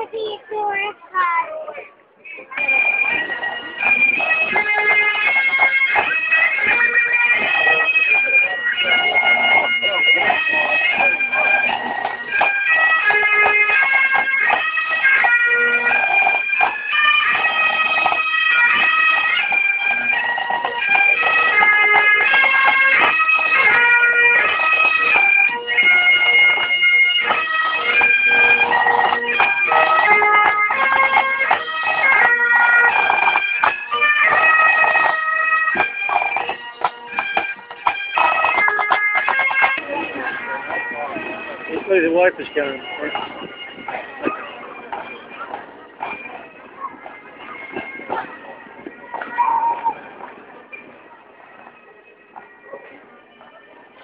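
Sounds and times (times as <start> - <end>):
bagpipes playing a marching tune: 2.2 - 54.0.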